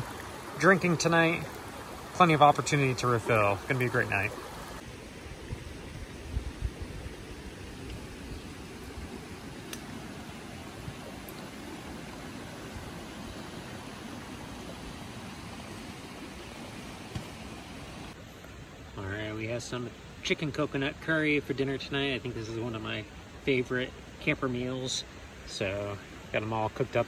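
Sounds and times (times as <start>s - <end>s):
river flowing over stones: 0.0s - 18.8s.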